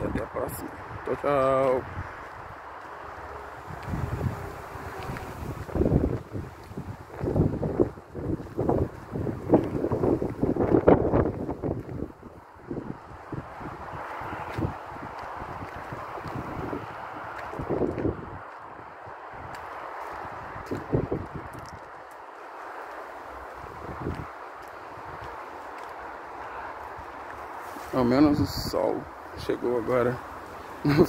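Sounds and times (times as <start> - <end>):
wind buffeting microphone: 0.0 - 31.0.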